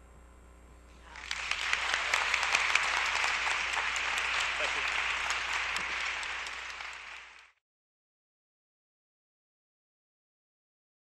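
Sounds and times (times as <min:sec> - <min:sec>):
audience applause: 0:01.1 - 0:07.6.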